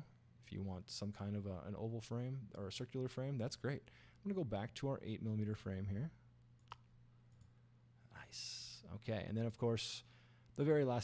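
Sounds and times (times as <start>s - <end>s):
faint low hum: 0.0s - 11.0s
computer mouse click: 6.6s - 7.5s.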